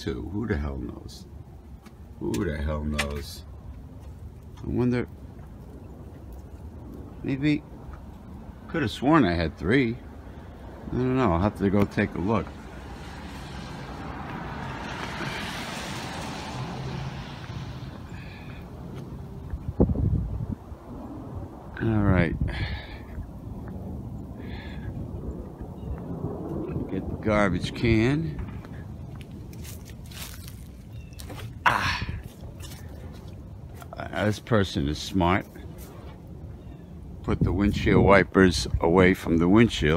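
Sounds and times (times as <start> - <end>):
wind rumble on microphone: 0.0 - 39.9
car passing: 5.2 - 31.1.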